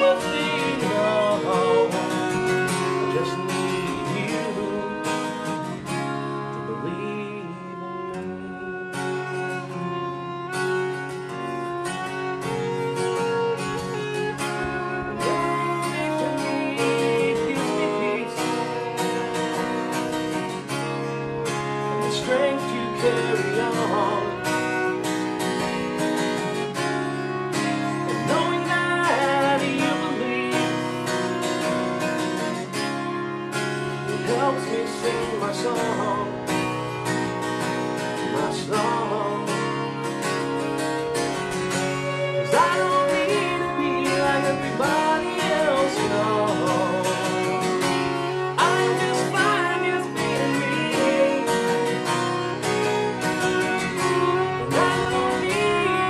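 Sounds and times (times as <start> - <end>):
acoustic guitar strumming: 0.0 - 56.0
fiddle melody: 0.0 - 56.0.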